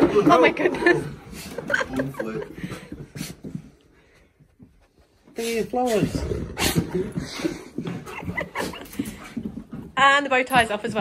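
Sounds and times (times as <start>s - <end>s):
dog noises: 5.9s - 9.7s.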